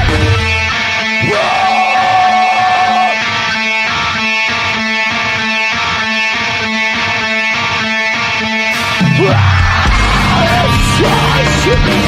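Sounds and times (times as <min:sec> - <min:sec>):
electric guitar chords: 0:00.0 - 0:12.0.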